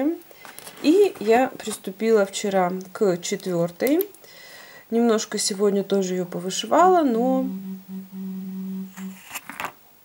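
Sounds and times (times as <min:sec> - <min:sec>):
woman humming: 0:05.7 - 0:09.2.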